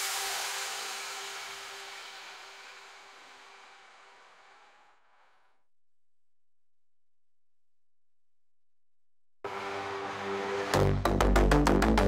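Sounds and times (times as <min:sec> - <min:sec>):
hissing synth wash: 0:00.0 - 0:04.8.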